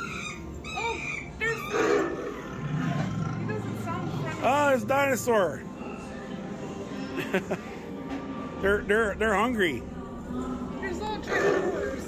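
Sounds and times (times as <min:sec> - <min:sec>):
recorded animal cries: 0:00.0 - 0:04.4, 0:11.2 - 0:12.0
animal growl: 0:01.6 - 0:04.4, 0:11.3 - 0:12.0.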